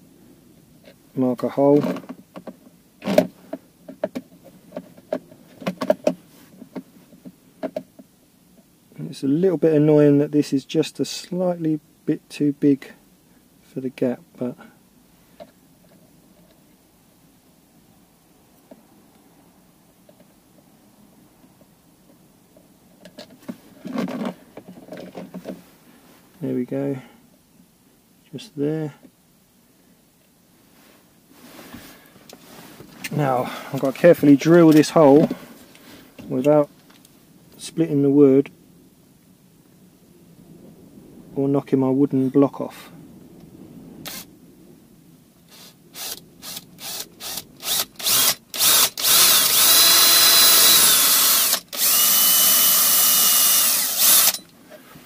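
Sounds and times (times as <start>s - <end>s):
faint handling rustle: 0.8s - 9.5s, 19.9s - 27.7s, 29.8s - 38.5s, 54.1s - 55.0s
cordless drill whining: 44.1s - 44.3s, 45.5s - 54.5s.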